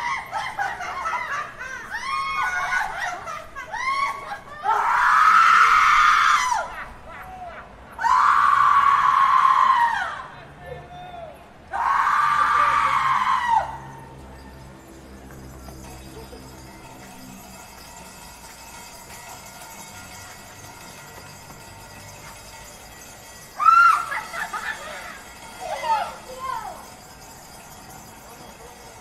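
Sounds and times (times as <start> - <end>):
people shrieking: 0.0 - 10.3, 11.7 - 14.2, 23.6 - 26.8.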